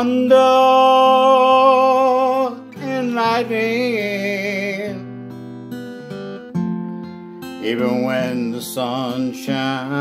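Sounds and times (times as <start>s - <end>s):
man singing country song: 0.0s - 6.1s, 7.3s - 10.0s
acoustic guitar: 0.0s - 10.0s.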